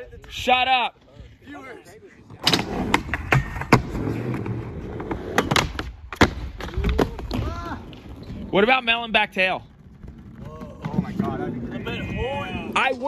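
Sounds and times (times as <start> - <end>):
skateboard wheels rolling on concrete: 0.0 - 13.0
skateboard clacking on ground: 2.4 - 8.7, 9.8 - 12.7.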